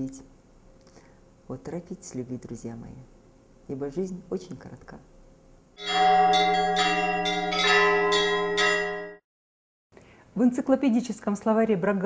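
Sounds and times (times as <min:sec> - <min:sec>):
church bells ringing: 0:05.8 - 0:09.2
steady low bell tone: 0:05.8 - 0:09.2.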